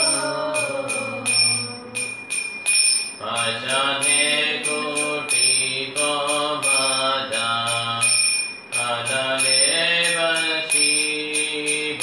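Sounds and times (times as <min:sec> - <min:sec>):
man chanting a melody: 0:00.0 - 0:02.1, 0:03.2 - 0:08.2, 0:08.8 - 0:12.0
hand cymbals struck in a beat: 0:00.0 - 0:12.0.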